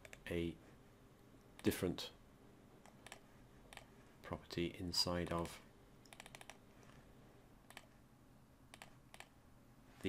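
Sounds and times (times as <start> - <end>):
faint computer clicks: 2.8 - 3.9, 5.3 - 7.0, 7.7 - 8.0, 8.7 - 9.4.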